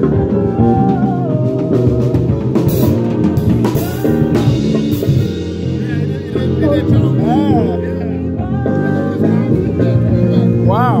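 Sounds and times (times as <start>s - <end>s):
low bass notes: 0.0s - 11.0s
person singing: 0.0s - 11.0s.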